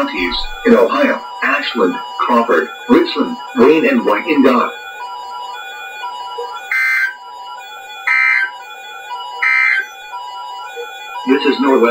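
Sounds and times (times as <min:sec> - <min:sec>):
buzzy warbling digital tone bursts: 0:00.0 - 0:11.9.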